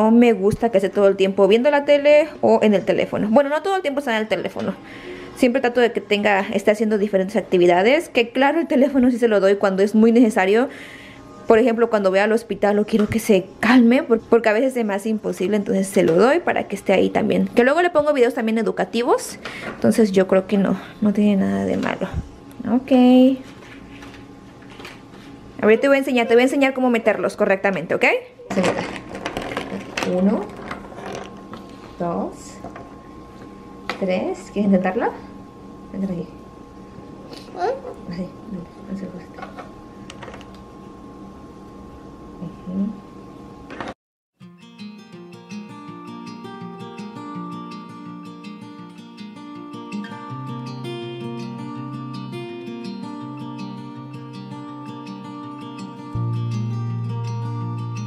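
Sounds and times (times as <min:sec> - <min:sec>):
acoustic guitar music: 0:25.6 - 0:26.8, 0:44.4 - 0:58.0
plastic bag crinkling: 0:28.6 - 0:31.5.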